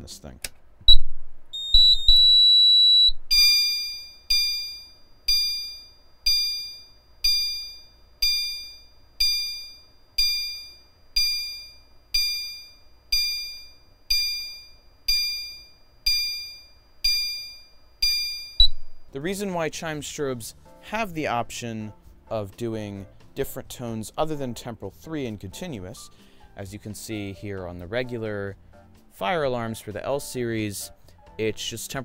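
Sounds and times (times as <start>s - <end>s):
high-pitched beep: 0.9s - 6.7s, 18.0s - 19.1s
electronic alarm chime: 1.6s - 19.2s.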